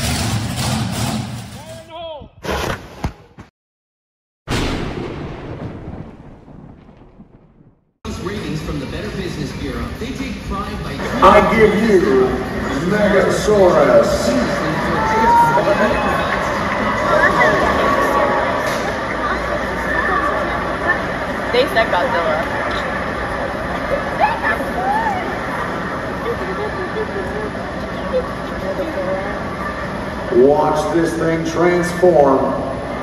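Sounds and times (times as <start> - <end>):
large vehicle engine rumble: 0.0 - 1.6
thunder-like rumbling boom: 4.5 - 7.9
crowd chatter: 8.1 - 33.0
voices calling out: 11.0 - 30.9.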